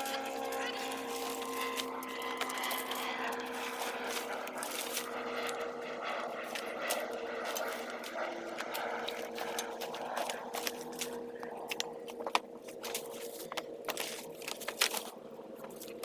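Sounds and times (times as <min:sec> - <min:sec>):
dry fronds and branches crunching: 0:00.0 - 0:16.0
steady mechanical hum: 0:00.0 - 0:16.0
wood snapping and cracking: 0:08.6 - 0:16.0.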